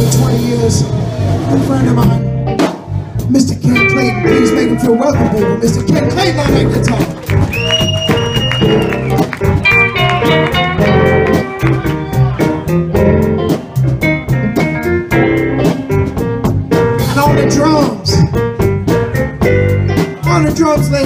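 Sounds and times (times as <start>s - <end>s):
bass: 0.0s - 21.0s
steady drum beat: 0.0s - 21.0s
lead electric guitar: 3.7s - 17.6s.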